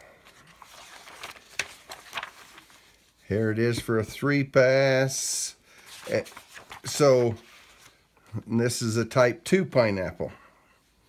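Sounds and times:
paper pages being turned: 0.1 - 4.0, 5.8 - 8.0.

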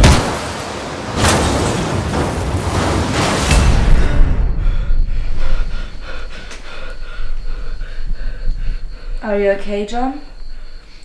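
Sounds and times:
low rumble: 2.1 - 9.2
man gasping: 4.5 - 8.8
man panting: 4.5 - 9.2.

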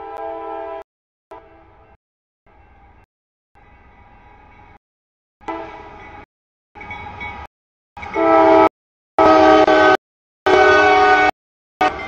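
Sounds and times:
locomotive air horn blasts: 0.0 - 0.8, 8.1 - 12.0.

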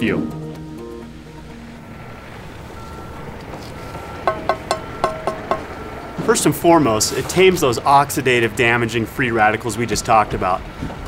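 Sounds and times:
soft background music: 0.0 - 6.6
low engine rumble: 0.0 - 11.0
truck reversing alarm beeping: 0.4 - 11.0.

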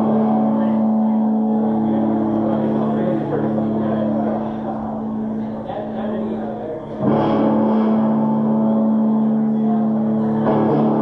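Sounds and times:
live band droning note: 0.0 - 11.0
loud guitar chord ringing: 0.0 - 11.0.

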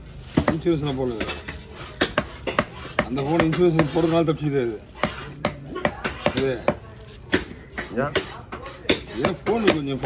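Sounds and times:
knife chopping on wooden block: 0.3 - 4.2, 5.0 - 10.0.

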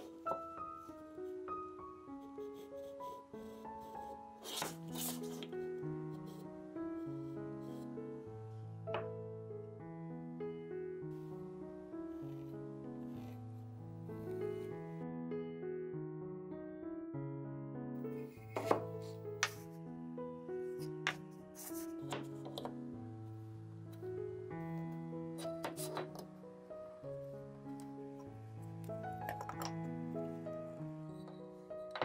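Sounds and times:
soft piano music: 0.0 - 32.0
hand tool scraping wood: 4.5 - 5.6.

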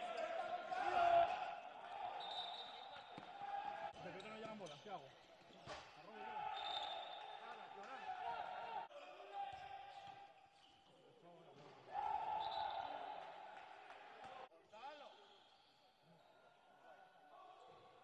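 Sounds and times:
players shouting: 0.0 - 4.0.

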